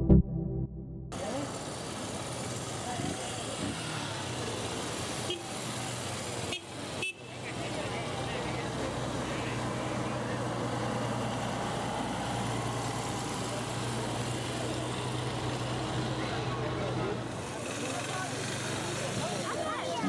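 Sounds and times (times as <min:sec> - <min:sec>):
bus engine humming: 0:00.0 - 0:06.4
street noise: 0:00.0 - 0:20.0.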